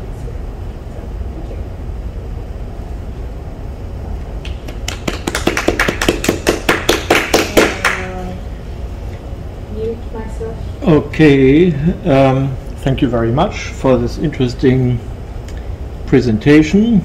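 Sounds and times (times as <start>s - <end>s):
low room hum: 0.0s - 17.0s
audience clapping: 4.4s - 8.2s.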